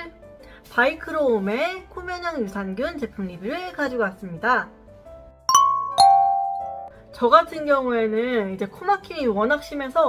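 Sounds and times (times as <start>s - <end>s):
two-note descending chime: 5.5s - 6.9s.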